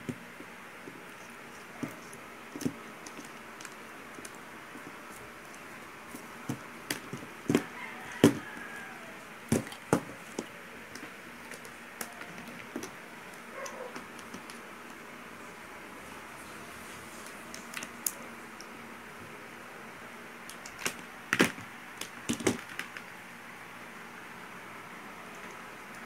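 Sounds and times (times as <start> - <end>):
clicks and knocks of handling wires: 0.0 - 8.8, 9.5 - 15.0, 20.4 - 23.1.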